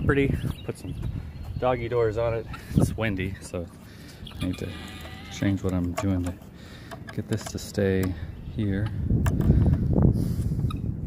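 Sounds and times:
wind buffeting microphone: 0.0s - 4.7s, 7.6s - 11.0s.

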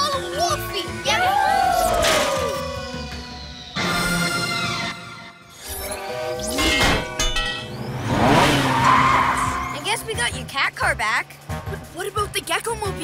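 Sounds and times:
background music: 0.0s - 13.0s
rushing vehicle effect: 7.1s - 12.9s.

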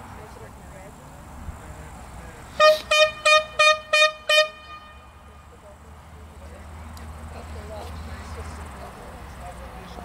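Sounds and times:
horn tooting: 2.5s - 5.6s.

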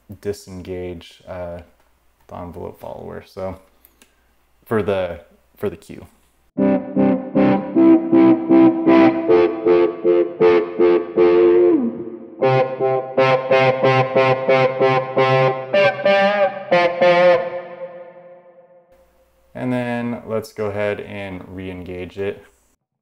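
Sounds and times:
electric guitar single notes: 6.6s - 18.8s.

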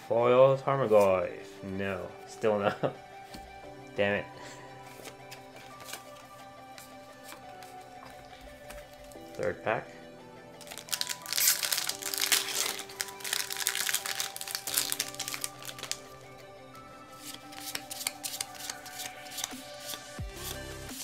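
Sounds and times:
background music: 0.0s - 21.0s
trading cards sliding and flipping: 0.8s - 1.2s, 4.8s - 9.2s, 17.1s - 21.0s
foil wrapper crinkling and tearing: 10.6s - 16.2s, 17.2s - 20.1s.

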